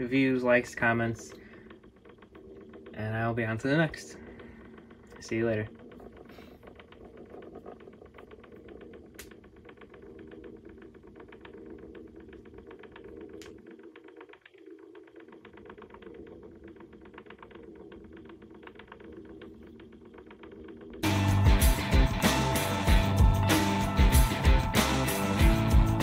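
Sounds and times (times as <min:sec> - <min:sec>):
faint motor hum: 0:00.0 - 0:26.0
rapid ticking gears: 0:00.0 - 0:26.0.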